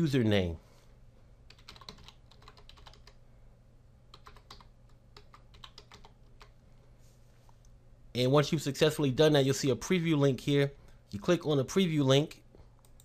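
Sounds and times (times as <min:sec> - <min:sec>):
typing on computer keyboard: 0:01.5 - 0:03.2, 0:04.1 - 0:06.5.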